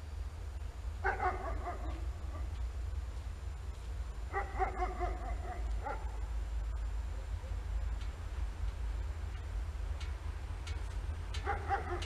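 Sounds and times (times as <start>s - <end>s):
steady low rumble: 0.0s - 12.0s
dog barking and yelping: 1.0s - 2.5s, 4.3s - 6.2s, 11.4s - 12.0s.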